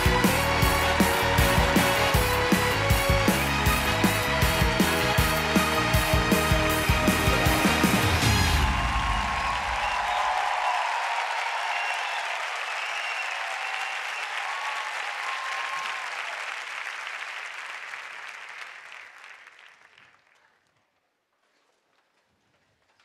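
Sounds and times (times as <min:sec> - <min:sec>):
audience applauding and cheering: 0:00.0 - 0:20.6.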